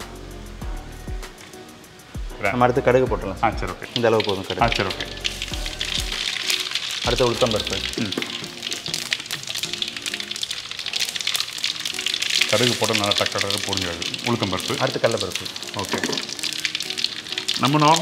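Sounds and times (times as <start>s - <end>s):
mustard seeds crackling in hot oil: 0.0s - 18.0s.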